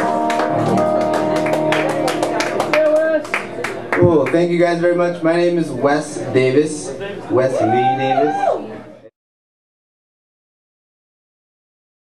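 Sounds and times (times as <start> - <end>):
audience clapping: 0.0 - 4.6.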